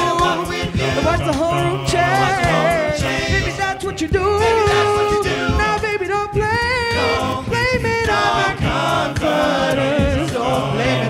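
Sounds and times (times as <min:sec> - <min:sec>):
male a cappella singing: 0:00.0 - 0:11.0.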